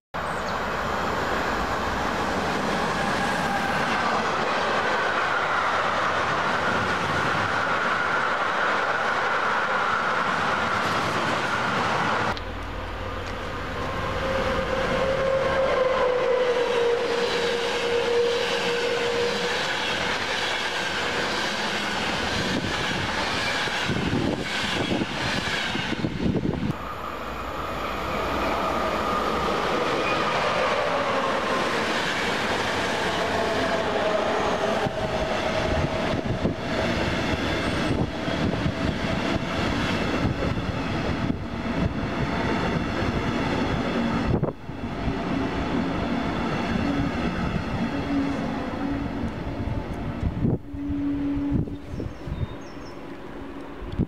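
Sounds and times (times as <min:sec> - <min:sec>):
electric locomotive passing: 0:00.2 - 0:54.0
passenger train rolling past: 0:00.2 - 0:54.0.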